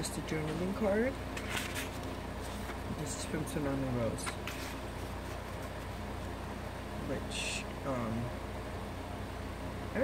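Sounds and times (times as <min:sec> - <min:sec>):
low room hum and hiss: 0:00.0 - 0:10.0.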